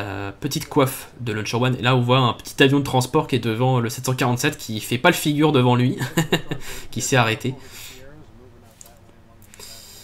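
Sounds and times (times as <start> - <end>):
man laughing: 5.8 - 7.3
man's quiet voice: 6.8 - 10.0
breathy hiss: 9.5 - 10.0.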